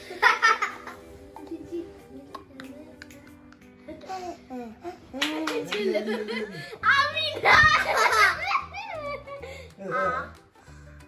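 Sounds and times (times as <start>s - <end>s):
girls laughing and giggling: 0.0s - 2.0s, 3.8s - 10.2s
slurred child speech: 6.8s - 8.0s.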